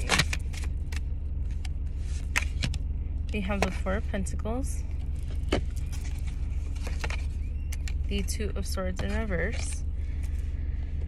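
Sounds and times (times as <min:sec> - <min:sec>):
low hum inside a car: 0:00.0 - 0:11.0.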